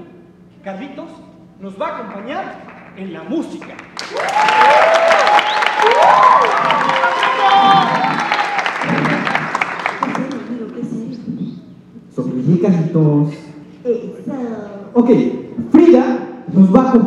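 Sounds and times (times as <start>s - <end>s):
audience applauding: 2.1s - 10.8s
audience cheering and shouting: 4.0s - 10.1s.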